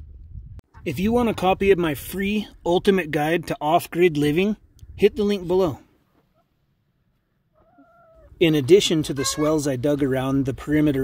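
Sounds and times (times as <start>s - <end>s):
faint chicken call: 7.5s - 8.4s.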